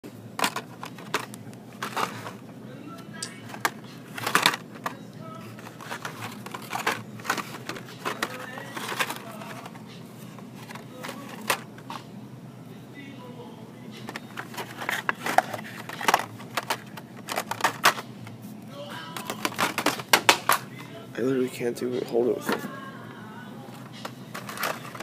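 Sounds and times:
plastic blister packs clacking: 0:00.3 - 0:02.4, 0:03.2 - 0:12.0, 0:13.9 - 0:18.4, 0:19.0 - 0:20.9, 0:23.7 - 0:25.0.

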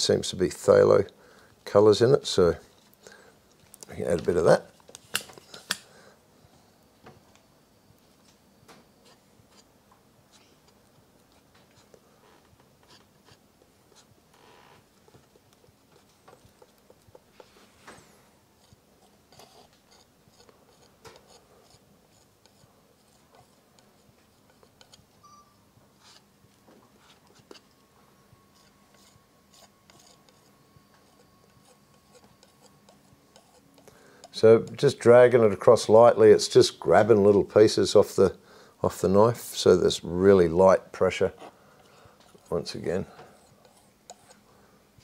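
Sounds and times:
palette knife scraping paint: 0:10.3 - 0:14.1, 0:15.2 - 0:17.7, 0:18.6 - 0:25.1, 0:28.5 - 0:34.9, 0:42.2 - 0:44.5.

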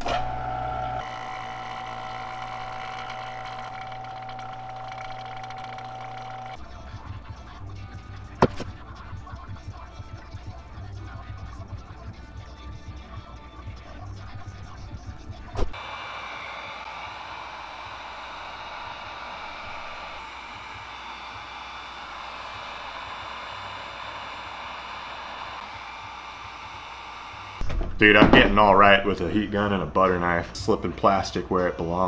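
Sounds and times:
background music: 0:06.6 - 0:15.8
heat gun blowing hiss: 0:15.7 - 0:27.6.

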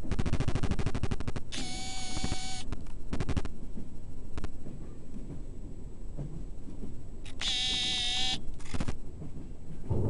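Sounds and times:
train clattering on track: 0:03.6 - 0:10.0.

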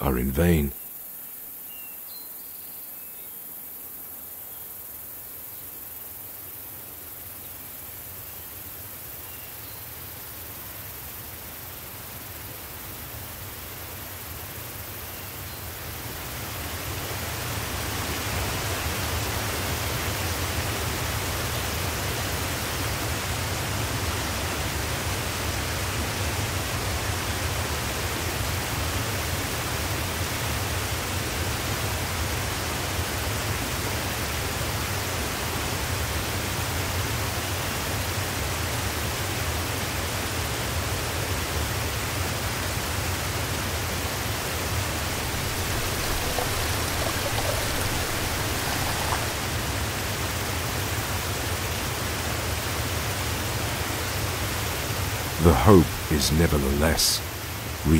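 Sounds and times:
creek water rushing over rocks: 0:44.9 - 0:51.7.

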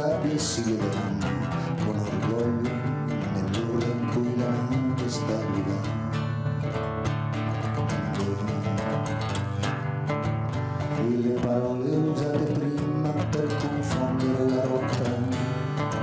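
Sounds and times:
guitar strumming and picking chords: 0:00.0 - 0:16.0.

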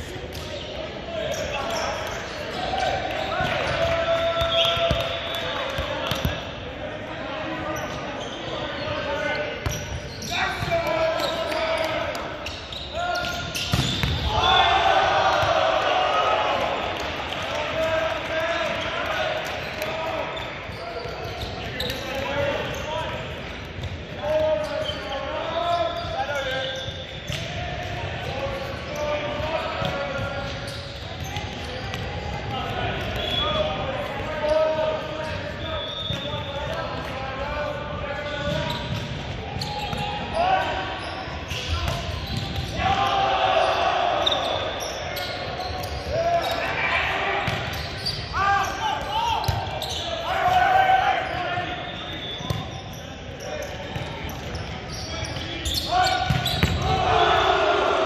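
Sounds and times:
sneakers squeaking on hardwood: 0:09.6 - 0:14.3, 0:38.3 - 0:40.1, 0:47.5 - 0:50.2, 0:51.2 - 0:57.0.

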